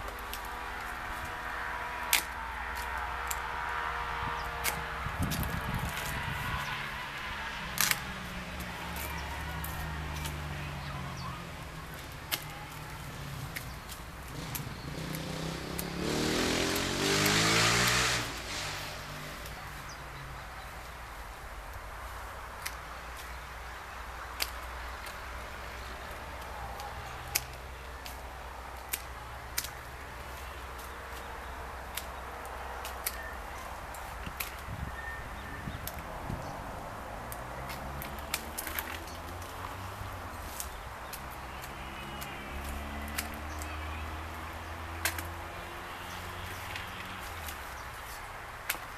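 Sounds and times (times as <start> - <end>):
pruning shears snipping: 0.0 - 19.8, 21.6 - 34.9, 37.2 - 48.9
rushing noise: 14.4 - 19.4.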